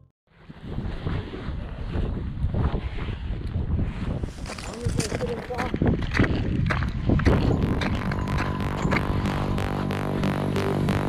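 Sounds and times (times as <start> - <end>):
wind buffeting microphone: 0.3 - 9.4.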